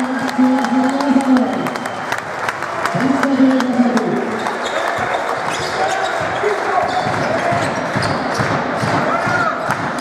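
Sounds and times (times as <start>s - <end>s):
crowd chatter and calls: 0.0s - 10.0s.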